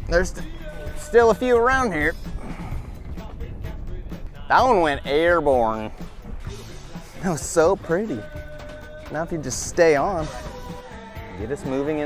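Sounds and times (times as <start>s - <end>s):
wind rumbling on microphone: 0.0s - 10.2s
choppy water around boat: 0.0s - 10.9s.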